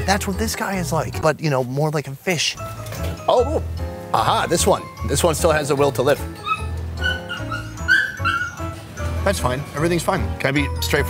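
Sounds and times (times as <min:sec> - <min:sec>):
dog whimpering: 0:06.3 - 0:08.8.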